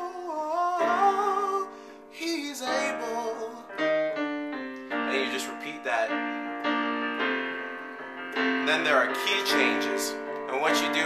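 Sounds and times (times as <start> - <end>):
digital piano chords: 0.0 - 11.0.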